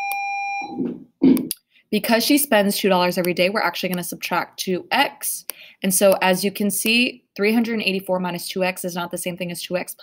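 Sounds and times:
steady electronic beep: 0.0 - 0.9.

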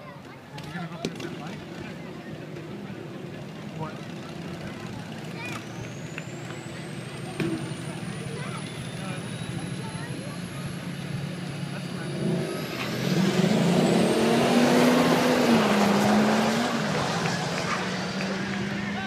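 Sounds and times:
crowd talking: 0.0 - 19.0
drag racing engines rumbling: 0.0 - 19.0.

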